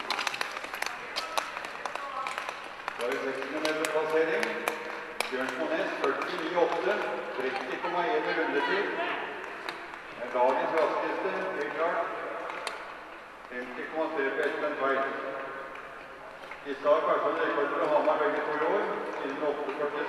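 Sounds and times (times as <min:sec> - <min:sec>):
man giving race commentary: 0:03.0 - 0:09.3, 0:10.2 - 0:12.4, 0:13.5 - 0:15.6, 0:16.6 - 0:20.0.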